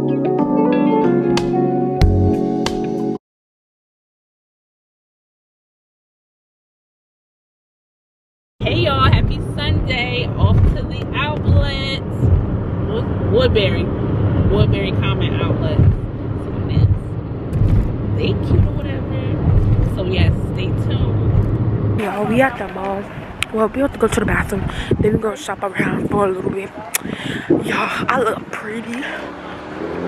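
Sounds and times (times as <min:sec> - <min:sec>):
woman talking: 0:08.6 - 0:12.0, 0:12.9 - 0:13.9, 0:14.5 - 0:15.9, 0:16.6 - 0:17.0, 0:18.2 - 0:21.4, 0:22.0 - 0:29.3
car road and engine rumble: 0:08.6 - 0:30.0.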